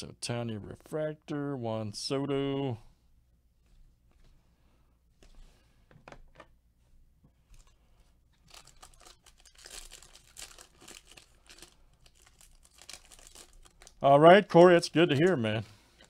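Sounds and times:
foil wrapper crinkling and tearing: 8.4s - 14.1s.

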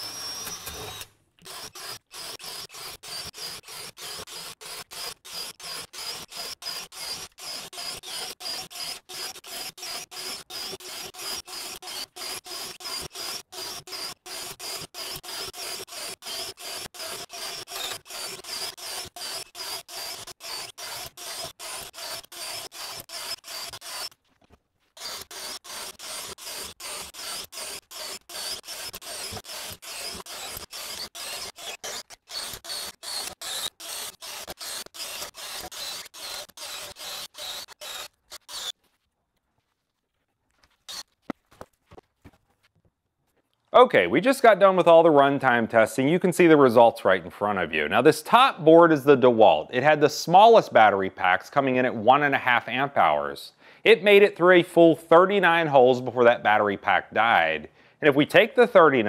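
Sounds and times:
cordless drill boring wood: 0.0s - 24.2s, 25.0s - 38.8s, 40.9s - 41.1s.

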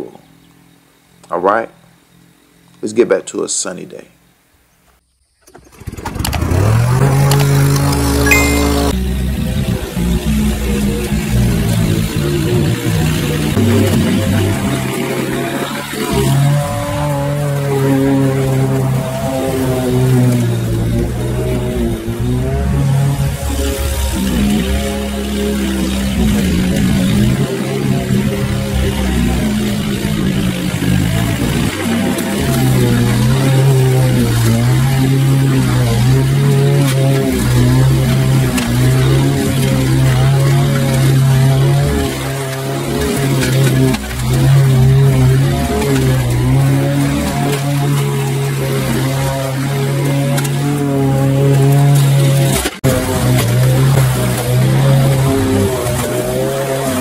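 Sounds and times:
push mower engine running: 5.4s - 57.0s
background music: 8.2s - 9.0s.

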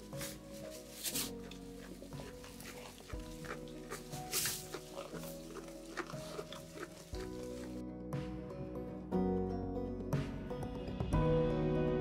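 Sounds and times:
sheep eating hay: 0.0s - 7.8s
background music with sustained chords: 0.0s - 12.0s.

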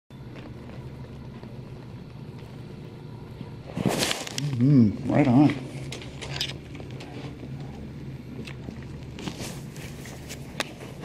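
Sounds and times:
steady low hum: 0.1s - 11.0s.

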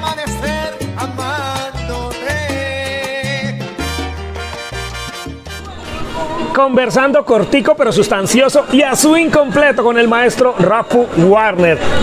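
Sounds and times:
salsa band playing: 0.0s - 11.2s.

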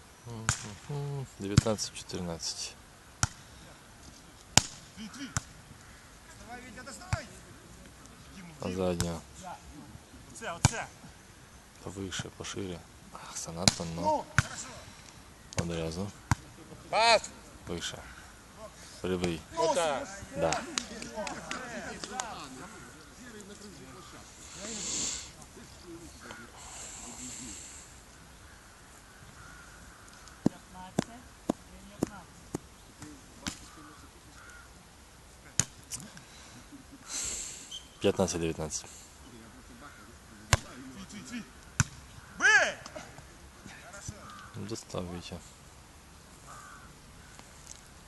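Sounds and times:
short bursts of hiss: 24.4s - 25.4s, 37.1s - 37.8s
volleyball being struck: 41.8s - 42.0s.

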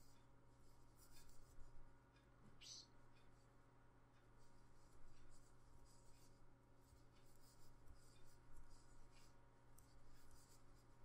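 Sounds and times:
low steady hum: 0.0s - 11.0s
crochet hook rustling yarn: 4.4s - 11.0s.

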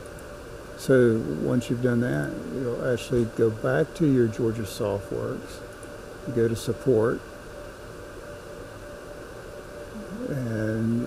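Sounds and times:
microphone background hiss: 0.0s - 11.0s.

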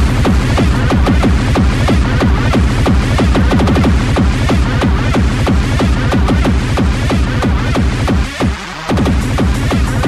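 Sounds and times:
fast electronic dance beat: 0.0s - 10.0s
steady bass line: 0.0s - 10.0s.

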